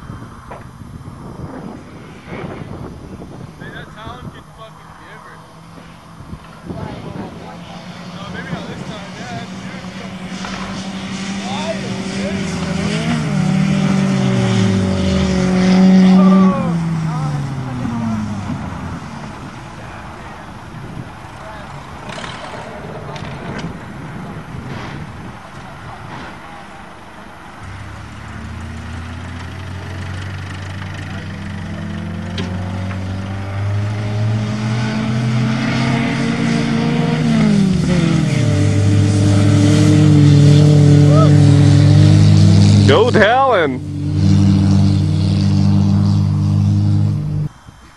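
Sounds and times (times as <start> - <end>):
racing car engines: 0.0 - 47.9.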